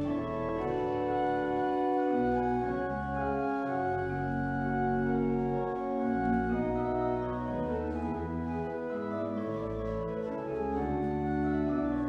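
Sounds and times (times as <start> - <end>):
pipe organ chords: 0.0 - 12.0.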